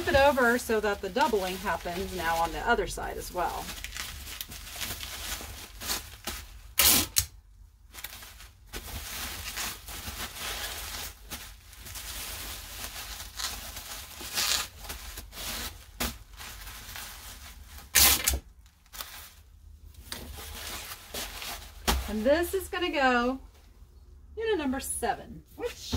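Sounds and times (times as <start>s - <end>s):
bubble wrap crinkling: 0.0s - 7.2s, 7.8s - 22.9s.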